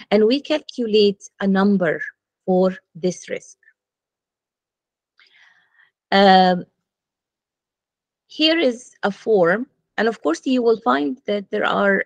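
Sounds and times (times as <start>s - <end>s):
faint breath: 5.2s - 6.0s.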